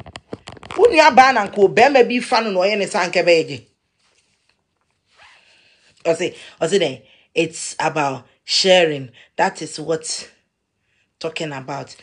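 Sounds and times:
woman speaking: 0.6 - 3.7, 6.0 - 10.4, 11.2 - 12.0.

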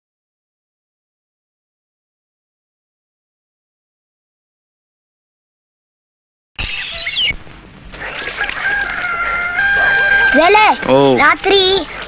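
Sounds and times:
street noise: 6.6 - 12.0
rooster crowing: 8.0 - 11.0.

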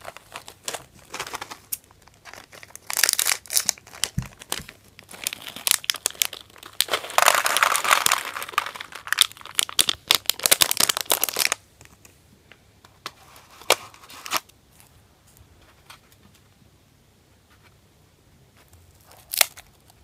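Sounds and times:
candy balls tumbling into plastic tray: 0.0 - 11.6
plastic packet crinkling: 0.0 - 11.6, 19.0 - 19.7.

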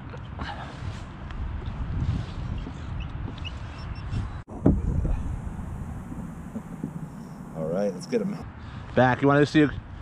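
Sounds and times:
wind rumbling on microphone: 0.7 - 8.6
loud knock: 6.1 - 7.1.

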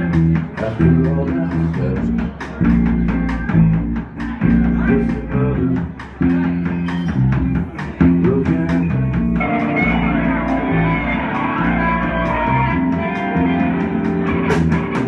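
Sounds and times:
bright electric guitar: 0.0 - 15.0
rock band playing: 0.0 - 15.0.

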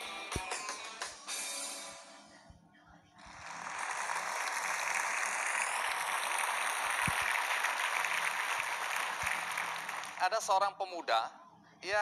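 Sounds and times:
studio audience applauding: 3.2 - 10.7.

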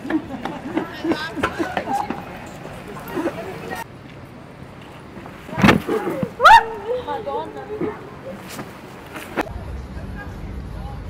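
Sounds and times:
street background noise: 0.0 - 11.0.

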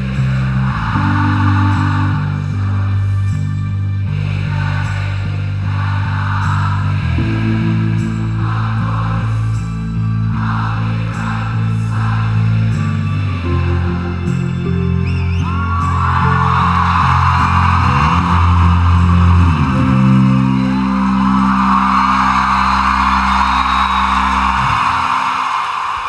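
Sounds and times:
crowd cheering: 0.0 - 26.0
rock band chords ringing: 0.2 - 4.7.

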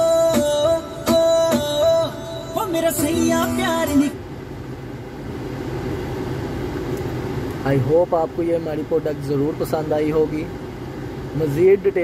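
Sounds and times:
air-conditioning fan blowing: 0.0 - 12.0
car engine hum inside cabin: 0.0 - 12.0.

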